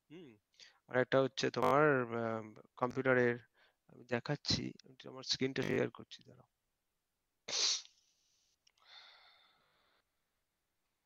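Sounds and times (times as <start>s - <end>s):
person sneezing breath burst: 7.5s - 7.9s.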